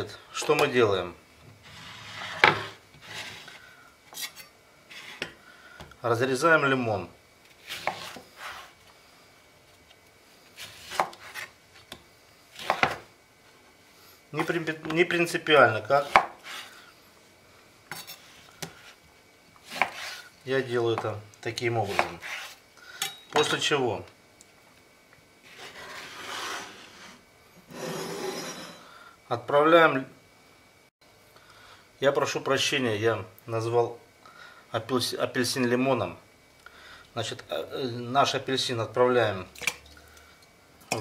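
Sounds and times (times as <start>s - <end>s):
cutting board scraping on countertop: 1.6s - 5.4s, 7.6s - 8.8s, 10.6s - 11.5s, 12.6s - 13.0s, 17.9s - 19.0s, 19.6s - 20.3s, 21.8s - 22.6s, 25.4s - 28.9s
knife cutting through orange: 7.6s - 8.7s, 19.6s - 20.3s.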